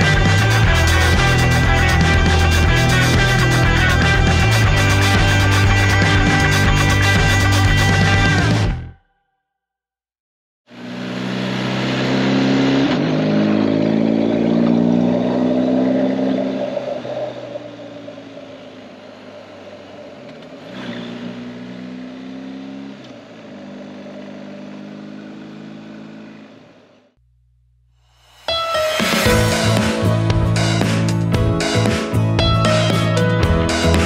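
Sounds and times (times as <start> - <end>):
motorcycle engine revving: 10.7 - 27.2.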